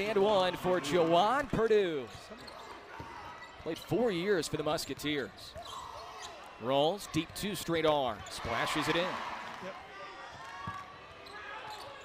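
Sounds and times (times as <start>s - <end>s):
murmur of arena crowd: 0.0s - 12.0s.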